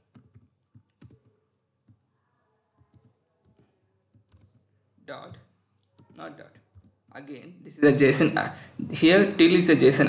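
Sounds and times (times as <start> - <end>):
keyboard keystrokes: 0.0 - 1.3, 2.9 - 4.6.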